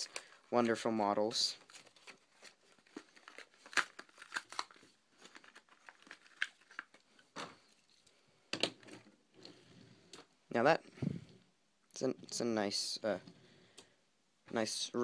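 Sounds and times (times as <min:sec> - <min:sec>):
plastic packaging crinkling: 0:00.0 - 0:09.2
cardboard tearing: 0:01.6 - 0:07.0.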